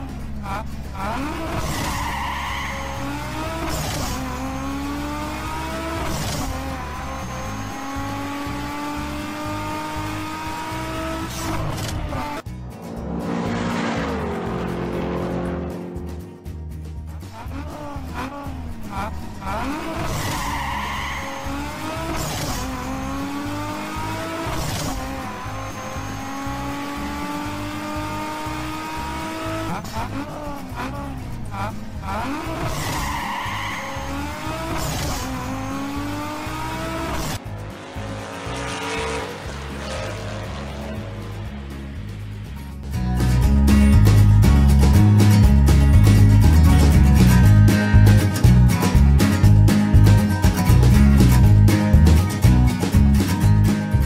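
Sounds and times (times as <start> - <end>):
van driving off: 0.0 - 54.0
van engine pulling through gears: 0.0 - 54.0.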